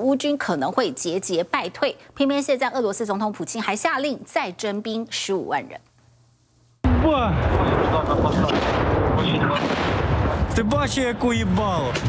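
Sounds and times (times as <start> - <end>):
shell explosion blast: 6.8 - 12.0.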